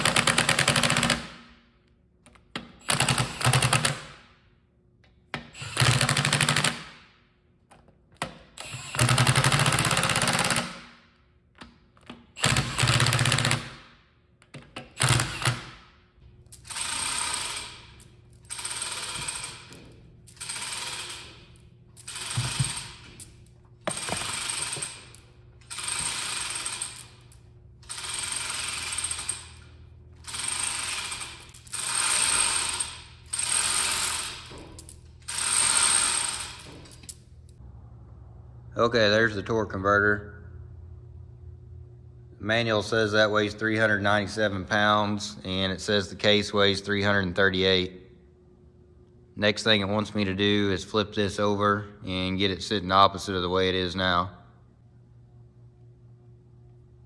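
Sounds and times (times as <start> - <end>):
impact wrench hammering: 0.0 - 1.5, 16.5 - 27.2.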